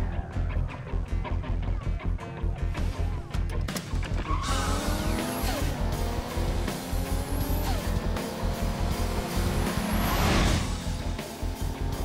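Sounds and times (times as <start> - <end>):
music with heavy bass beat: 0.0 - 12.0
tires squealing: 4.0 - 6.0
sports car engines revving: 4.3 - 12.0.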